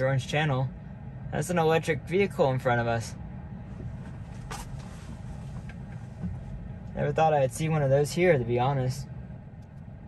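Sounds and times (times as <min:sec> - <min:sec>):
road and tyre noise in car: 0:00.0 - 0:10.0.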